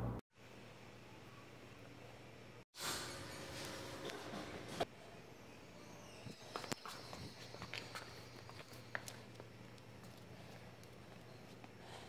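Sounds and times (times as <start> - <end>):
low steady hum: 0.0 - 2.6
faint footsteps: 6.3 - 12.0.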